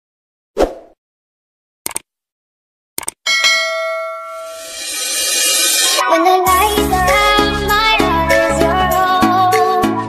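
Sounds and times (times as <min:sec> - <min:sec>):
notification bell ding: 0:03.3 - 0:05.8.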